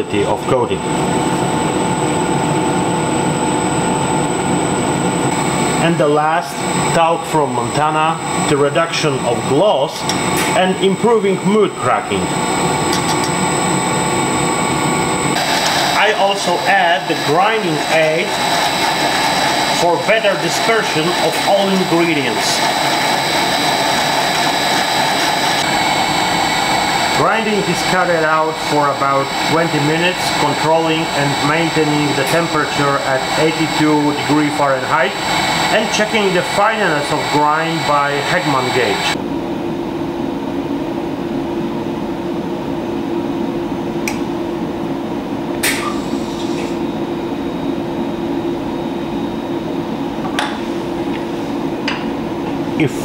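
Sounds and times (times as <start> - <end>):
dissolver motor whine: 10.0 - 39.2.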